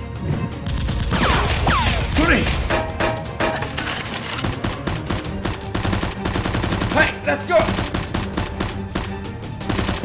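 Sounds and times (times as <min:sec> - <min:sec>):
background music: 0:00.0 - 0:10.0
rapid automatic gunfire: 0:04.4 - 0:10.0.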